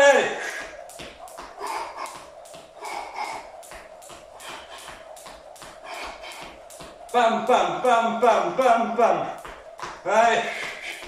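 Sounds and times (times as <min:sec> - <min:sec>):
jump rope slapping tiled floor: 0:00.0 - 0:11.0.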